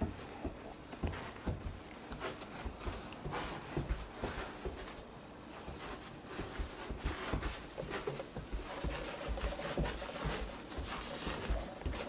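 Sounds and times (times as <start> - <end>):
baby crawling on floor: 0.0 - 5.0, 5.6 - 12.0.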